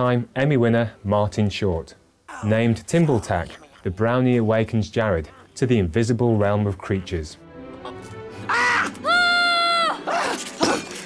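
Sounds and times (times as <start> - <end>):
faint background music: 0.0 - 11.0
high-pitched creature cry: 2.3 - 4.0, 7.8 - 10.4.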